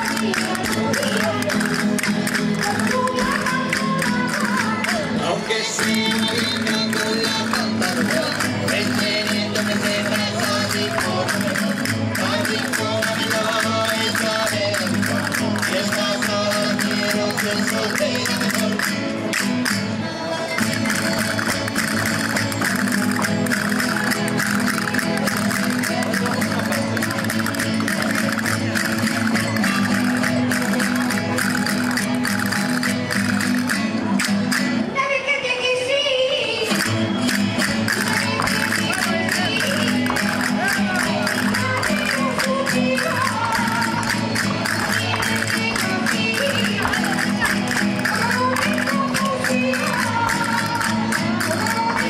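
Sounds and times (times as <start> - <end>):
person singing: 0.0 - 19.4, 35.0 - 52.0
string band with guitars: 0.0 - 52.0.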